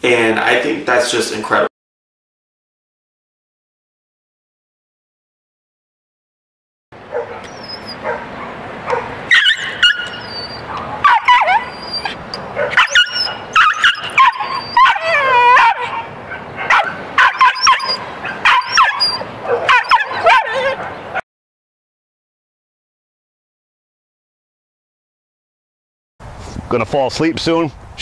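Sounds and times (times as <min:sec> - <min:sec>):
dog barking and yelping: 0:07.0 - 0:21.2
dog snarling: 0:07.1 - 0:21.0.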